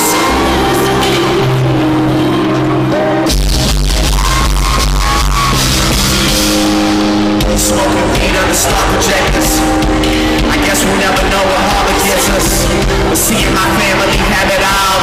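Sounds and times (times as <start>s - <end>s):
heavy deep bass: 0.0s - 15.0s
live concert music: 0.0s - 15.0s.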